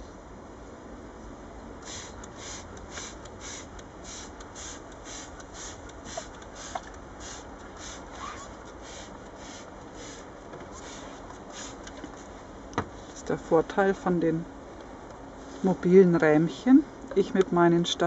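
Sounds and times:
hand sprayer hissing sprays: 1.8s - 11.9s.

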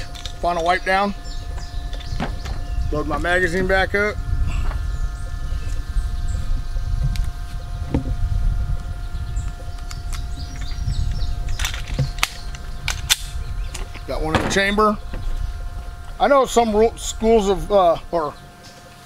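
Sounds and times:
wind rumble on microphone: 0.0s - 18.2s
faint steady hum: 0.0s - 19.0s.

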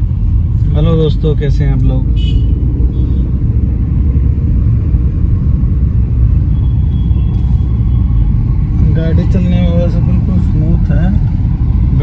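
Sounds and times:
car cabin road and engine noise: 0.0s - 12.0s.

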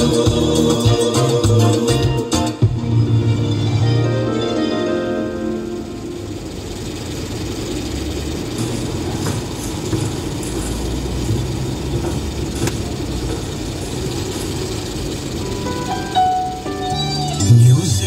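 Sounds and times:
car cabin road rumble: 6.0s - 18.0s.

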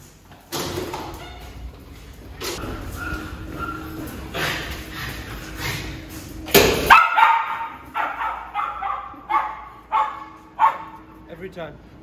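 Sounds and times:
small dog barking: 6.9s - 11.0s.

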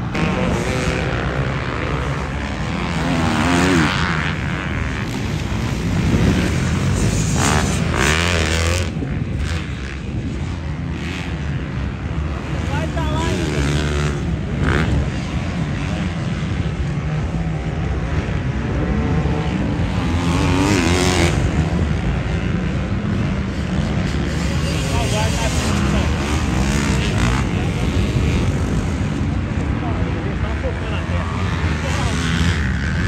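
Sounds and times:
dirt bike engines revving: 0.0s - 33.0s
steady drone of bikes: 0.0s - 33.0s.

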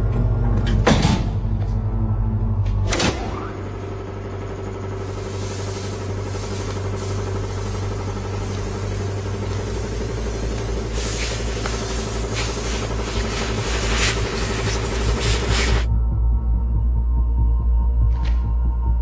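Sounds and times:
low suspense drone: 0.0s - 19.0s
hissing texture: 4.8s - 15.9s.

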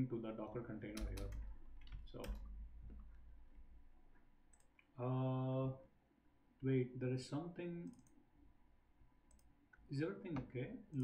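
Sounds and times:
computer mouse clicks: 1.0s - 3.2s, 4.5s - 4.9s, 7.9s - 8.2s, 9.3s - 9.8s.

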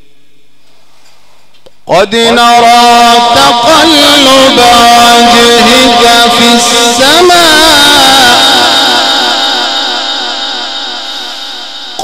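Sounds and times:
man reciting melodically: 1.8s - 12.0s.

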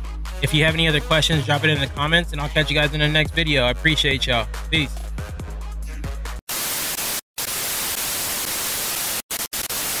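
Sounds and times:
background music: 0.0s - 6.4s
television static hiss: 6.5s - 10.0s.

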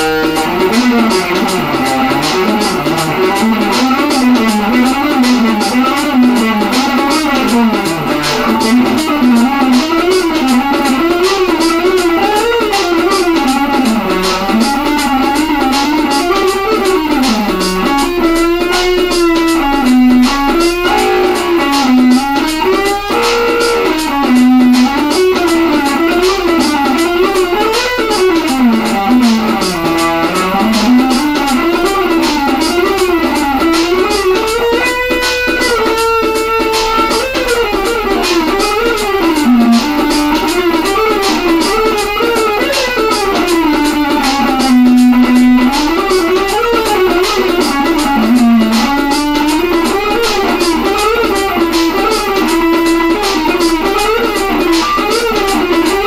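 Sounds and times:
electric guitar fast runs: 0.0s - 56.0s.

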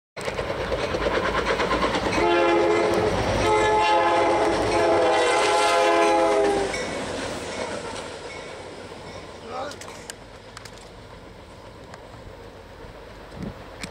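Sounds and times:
wheels clattering over rails: 0.2s - 3.6s
diesel locomotive engine rumble: 0.2s - 13.9s
locomotive air horn: 2.2s - 6.8s.

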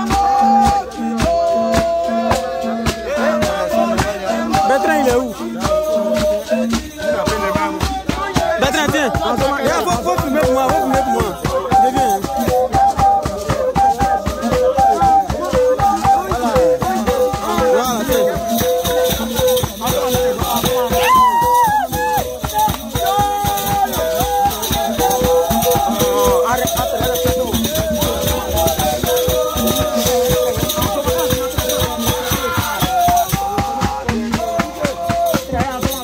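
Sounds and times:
voices singing and calling: 0.0s - 36.0s
gourd rattles shaken: 16.2s - 33.9s.

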